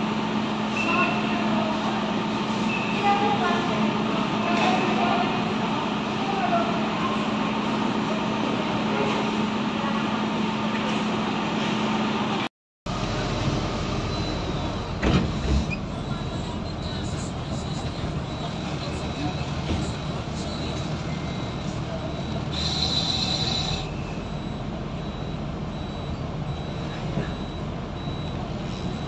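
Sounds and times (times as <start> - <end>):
people chatting: 0.8 - 2.2, 2.9 - 11.0, 15.8 - 23.6.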